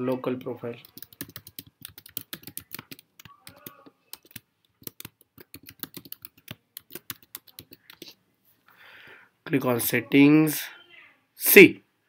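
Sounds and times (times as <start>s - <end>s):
computer keyboard typing: 0.0s - 8.2s.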